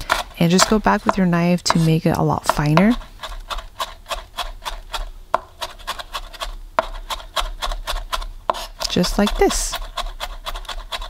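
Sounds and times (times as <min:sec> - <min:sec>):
knife chopping on cutting board: 0:00.0 - 0:11.0.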